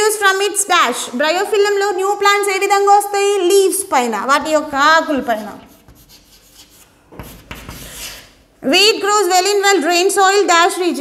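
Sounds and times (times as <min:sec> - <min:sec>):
chalk scraping on a blackboard: 0:05.1 - 0:08.4.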